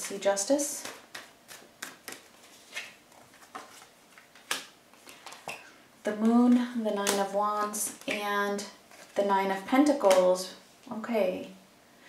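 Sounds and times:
cards snapping on a table: 0:00.8 - 0:02.8, 0:04.4 - 0:05.6.

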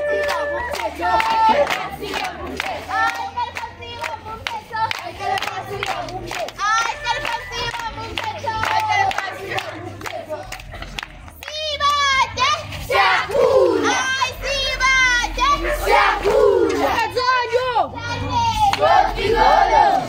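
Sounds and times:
crowd shouting and cheering: 0:00.0 - 0:10.5, 0:11.3 - 0:20.0.

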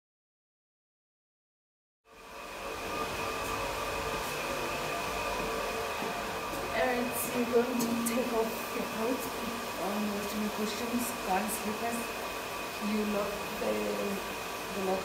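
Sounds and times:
electric fan motor humming: 0:02.1 - 0:15.0.

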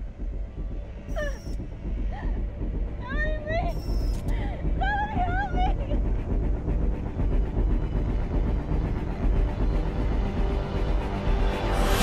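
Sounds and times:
low droning film score: 0:00.0 - 0:12.0.

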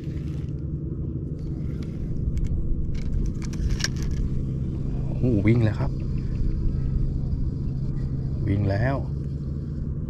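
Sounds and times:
steady low rumble: 0:00.0 - 0:10.0
fishing reel clicks and rattles: 0:02.3 - 0:04.3.

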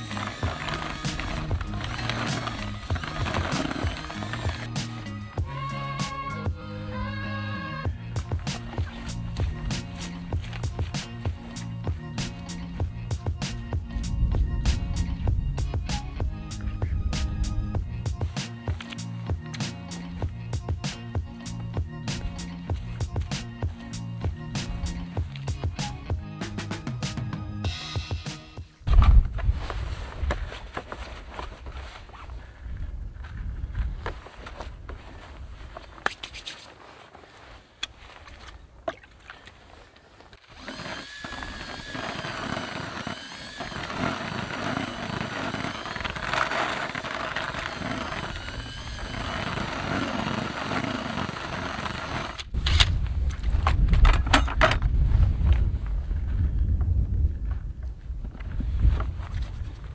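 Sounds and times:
cordless drill mixing in bucket: 0:00.0 - 0:05.2, 0:40.3 - 0:52.5
background music: 0:00.0 - 0:28.9
low rumble: 0:52.5 - 0:59.8.

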